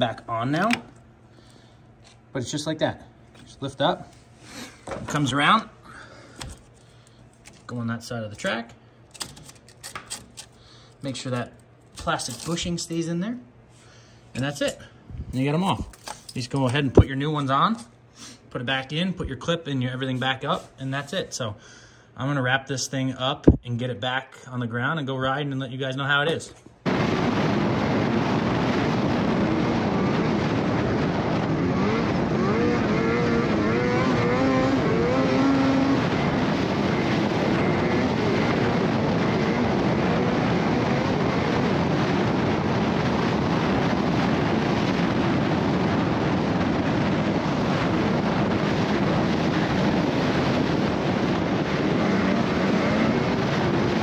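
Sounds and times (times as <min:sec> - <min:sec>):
steady rushing noise: 0:26.8 - 0:54.0
snowmobile engine running: 0:31.4 - 0:41.6, 0:51.5 - 0:54.0.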